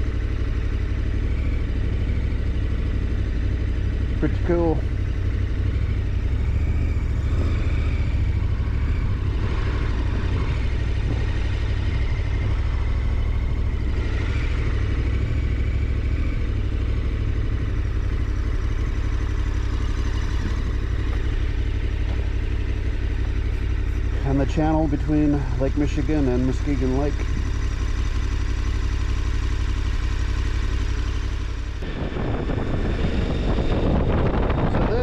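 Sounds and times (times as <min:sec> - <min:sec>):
motorcycle engine idling: 0:00.0 - 0:35.0.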